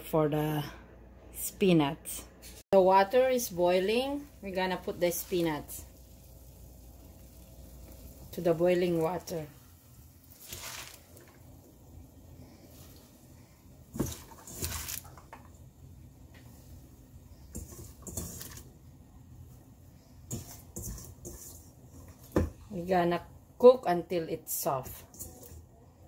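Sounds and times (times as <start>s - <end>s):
spinach dropped into boiling water: 10.2s - 11.6s, 13.9s - 15.6s.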